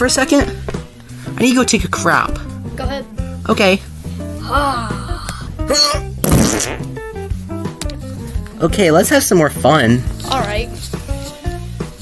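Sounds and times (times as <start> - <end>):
background music: 0.0 - 12.0
comedic fart noise: 5.7 - 7.2.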